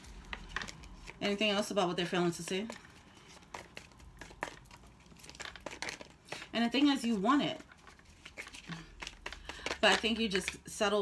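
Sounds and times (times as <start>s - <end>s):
cards being shuffled: 0.0s - 10.6s.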